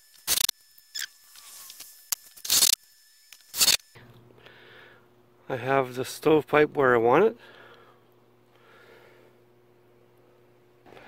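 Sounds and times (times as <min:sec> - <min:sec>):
cordless drill driving screws: 0:00.2 - 0:03.9.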